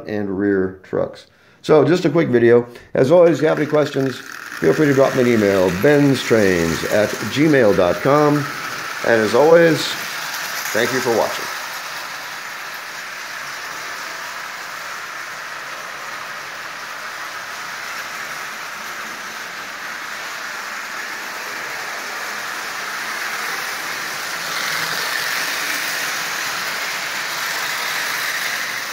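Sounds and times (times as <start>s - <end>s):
toy train whirring and rolling: 2.8s - 28.9s.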